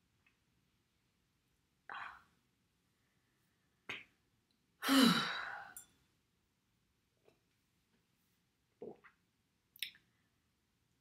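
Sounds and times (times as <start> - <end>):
woman sighing heavily: 4.8 - 5.8.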